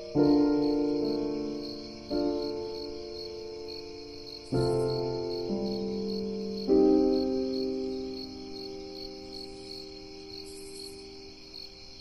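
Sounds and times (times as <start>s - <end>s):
soft piano chord: 0.0s - 11.0s
crickets chirping: 0.0s - 12.0s.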